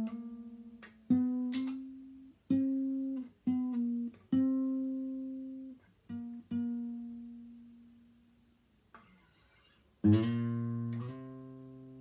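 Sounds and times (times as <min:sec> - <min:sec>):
acoustic guitar plucked notes: 0:00.0 - 0:08.2, 0:09.0 - 0:12.0.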